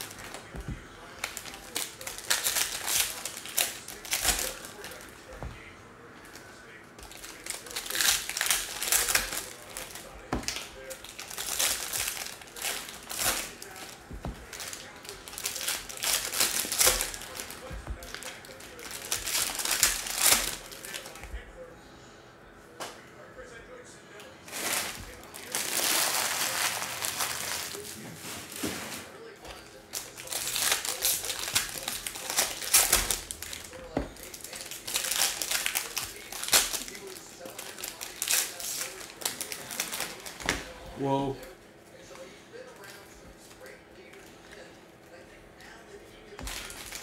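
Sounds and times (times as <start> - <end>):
foil wrappers crinkling: 0.0 - 21.4, 24.4 - 41.4, 46.2 - 47.0.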